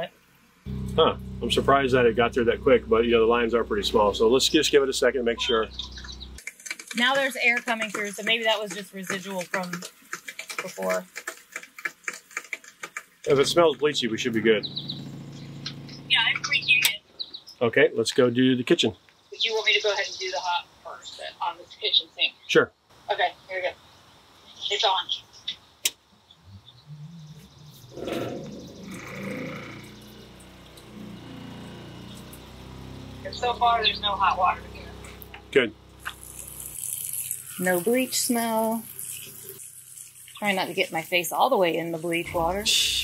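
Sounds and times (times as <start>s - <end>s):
water pump humming: 0.7s - 6.4s, 13.3s - 16.4s, 26.5s - 43.0s
rapid short clicks: 6.4s - 13.4s
water running into steel sink: 36.0s - 42.2s.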